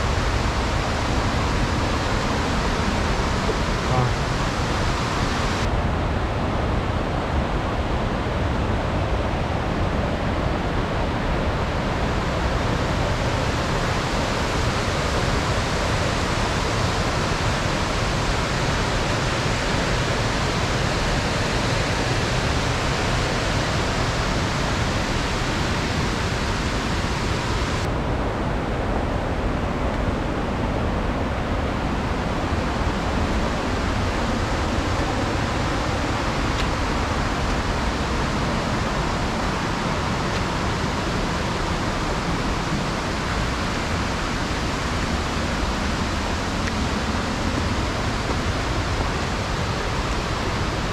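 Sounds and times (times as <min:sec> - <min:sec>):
waterfall rushing: 0:00.0 - 0:05.8, 0:10.5 - 0:28.1, 0:31.6 - 0:50.9.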